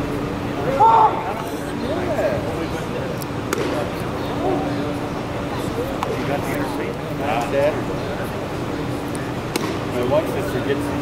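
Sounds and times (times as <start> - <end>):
spectators talking: 0.0 - 11.0
steady hum: 0.0 - 11.0
baseball bat crack: 3.5 - 4.0, 9.5 - 10.0.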